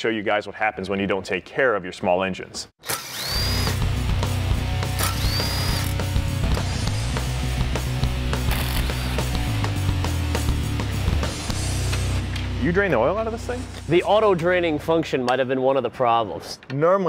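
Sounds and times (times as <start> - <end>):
power tool whine spinning up: 2.8 - 4.0, 4.9 - 6.2, 8.4 - 9.3
background music: 3.2 - 16.7
tools ratcheting and clicking: 5.0 - 6.0, 8.5 - 9.2.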